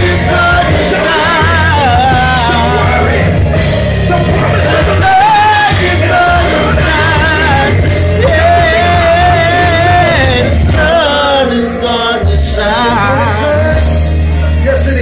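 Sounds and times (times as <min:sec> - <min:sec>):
backing track with heavy bass: 0:00.0 - 0:15.0
man singing: 0:00.0 - 0:15.0.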